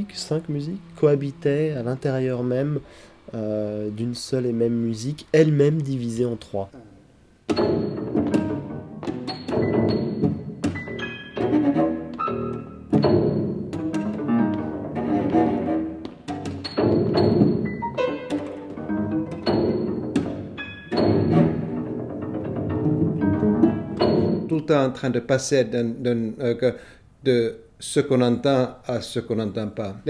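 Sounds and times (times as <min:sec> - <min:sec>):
cello and piano chamber music: 0:07.6 - 0:24.5.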